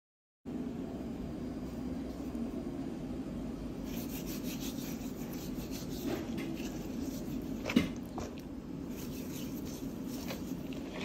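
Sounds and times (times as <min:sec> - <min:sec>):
hand rubbing fish skin: 0:03.8 - 0:07.8, 0:08.8 - 0:10.8.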